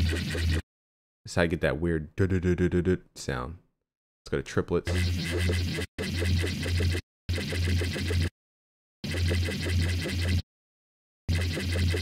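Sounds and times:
warbling synthesizer bass notes: 0.0s - 0.6s, 4.9s - 8.3s, 9.0s - 10.4s, 11.3s - 12.0s.

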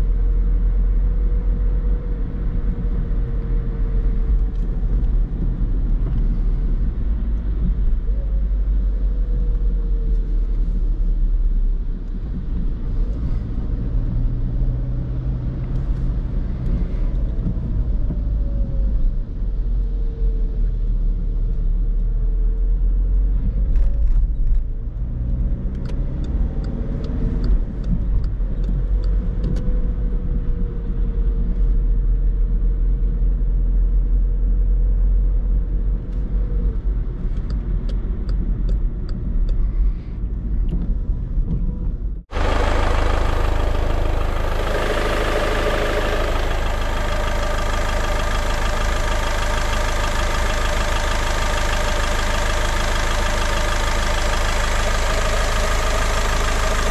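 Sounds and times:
car engine and road rumble: 0.0s - 56.9s
diesel engine idling: 42.3s - 56.9s
turn signal ticking: 42.3s - 56.9s.

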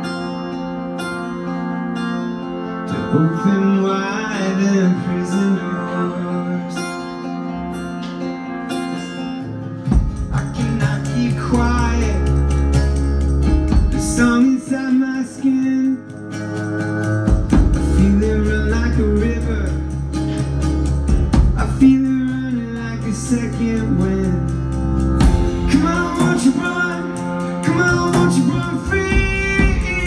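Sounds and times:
acoustic guitar strummed: 0.0s - 30.0s
man singing: 2.9s - 7.6s, 10.1s - 12.8s, 13.9s - 16.6s, 17.8s - 20.1s, 21.4s - 24.8s, 25.4s - 30.0s.

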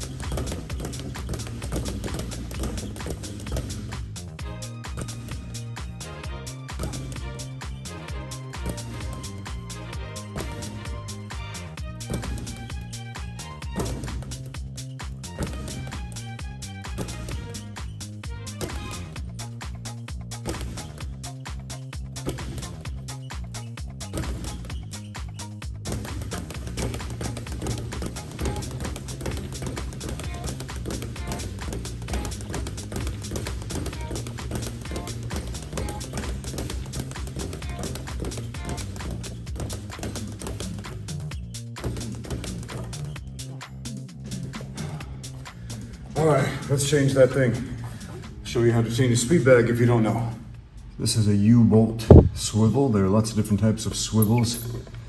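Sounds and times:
speed bag drumming: 0.0s - 47.9s
music with steady beat: 0.0s - 50.8s.

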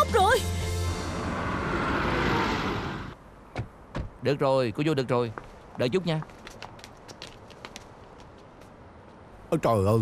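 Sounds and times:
van driving past: 0.4s - 3.2s.

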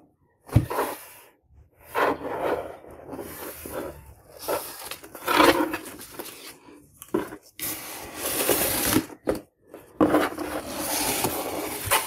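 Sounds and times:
hands scraping cardboard box: 10.0s - 12.0s.

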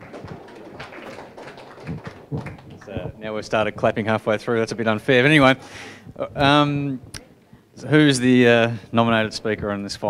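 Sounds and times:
people clapping: 0.0s - 4.1s.

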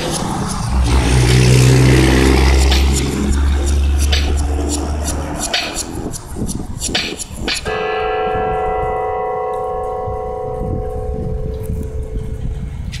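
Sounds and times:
held synth chord: 0.0s - 6.1s, 7.6s - 12.9s
hip-hop beat with hi-hat ticks: 0.0s - 7.8s.

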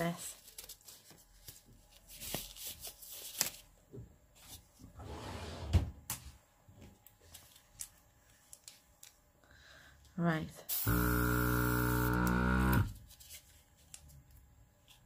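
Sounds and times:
disposable glove rustling: 0.3s - 4.8s.

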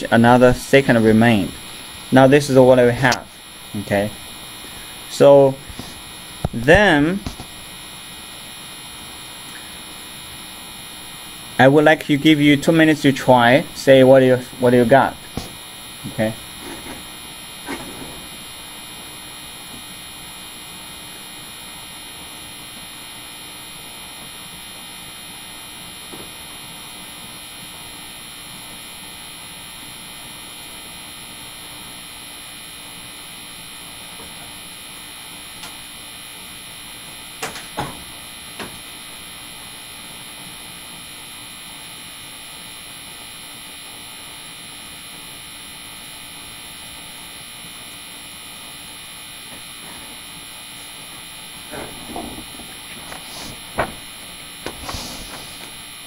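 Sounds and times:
room hiss: 0.0s - 56.0s.

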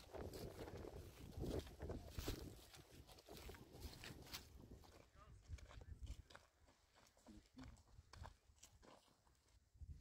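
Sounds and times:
footsteps on dry earth: 0.0s - 10.0s.

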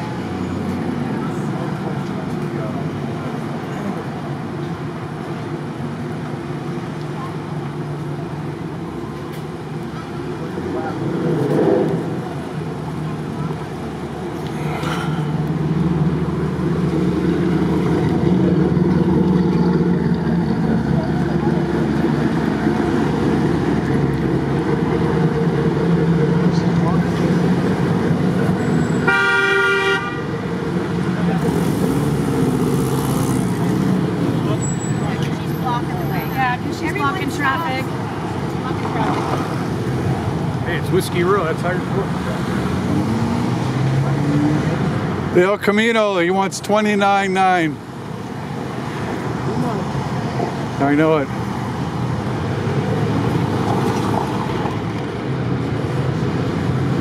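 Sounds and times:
vehicle engines running: 0.0s - 57.0s
vehicle horn blast: 29.0s - 30.3s.

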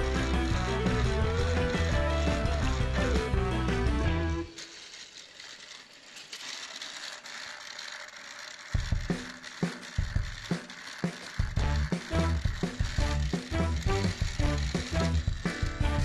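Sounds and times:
background music with steady beat: 0.0s - 4.5s, 11.2s - 16.0s
quiet even rattle: 0.0s - 16.0s.

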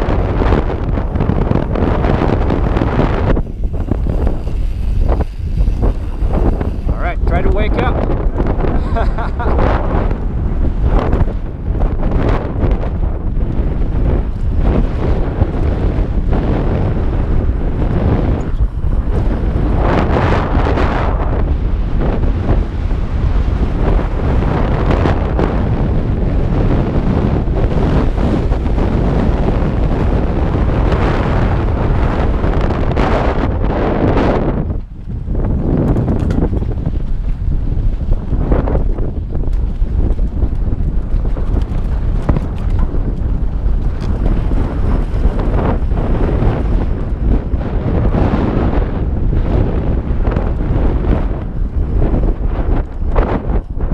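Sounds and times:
tyres rumbling on dirt: 0.0s - 53.9s
wind buffeting microphone: 0.0s - 53.9s.

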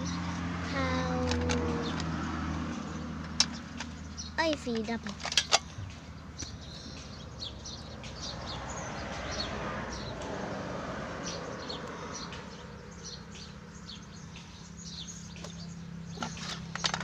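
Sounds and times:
small birds chirping: 0.0s - 17.0s.

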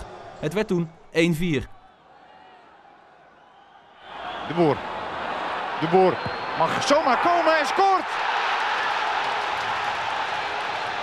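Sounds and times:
stadium crowd cheering: 1.6s - 11.0s.

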